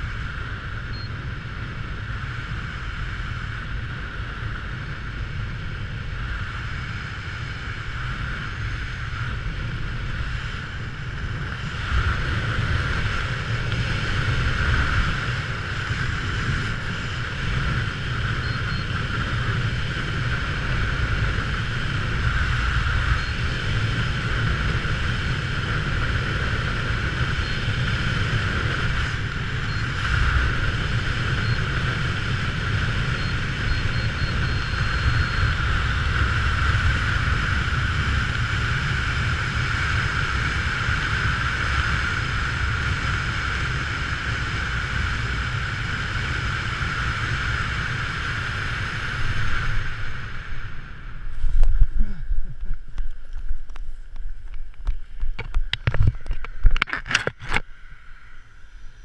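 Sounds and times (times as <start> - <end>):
wind rushing over microphone: 0.0 - 59.0
faint high beeps: 0.9 - 1.2, 18.4 - 19.0, 29.6 - 30.3, 31.2 - 31.9, 33.0 - 35.6.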